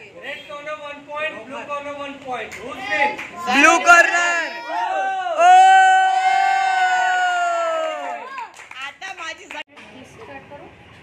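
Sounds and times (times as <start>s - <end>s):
man's long drawn-out shout: 4.2s - 8.2s.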